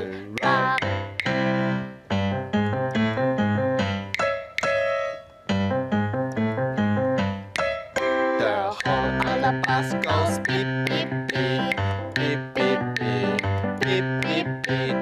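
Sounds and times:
bright keyboard chords: 0:00.0 - 0:15.0
singing: 0:08.8 - 0:15.0.

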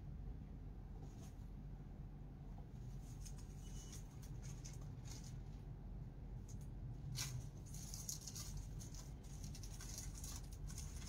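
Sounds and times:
low steady hum: 0:00.0 - 0:11.0
soft rustles and ticks: 0:02.6 - 0:05.7, 0:06.3 - 0:11.0.

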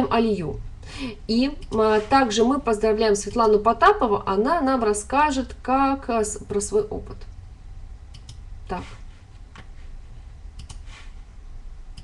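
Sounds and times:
low room hum: 0:00.0 - 0:12.0
computer control clicks: 0:01.6 - 0:01.8, 0:08.1 - 0:08.4, 0:10.6 - 0:10.8.

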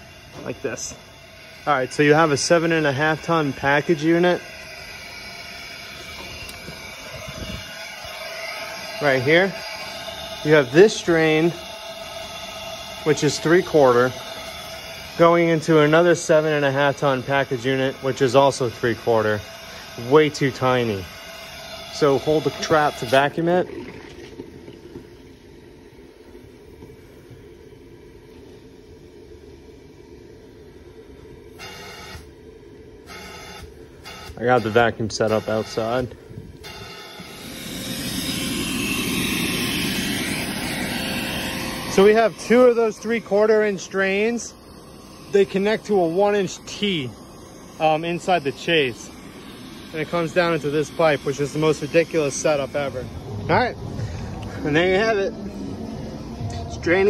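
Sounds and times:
short hissing bursts: 0:00.0 - 0:23.5, 0:31.5 - 0:32.3, 0:33.0 - 0:56.5
machinery hum: 0:00.0 - 0:57.0
vacuum low rumble: 0:35.8 - 0:57.0.

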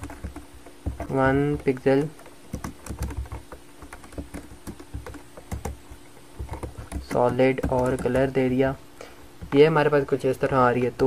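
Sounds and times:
computer keyboard typing: 0:00.0 - 0:08.8.

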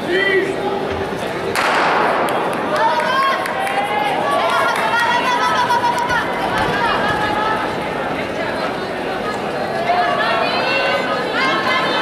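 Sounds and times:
spectators shouting and cheering: 0:00.0 - 0:12.0.

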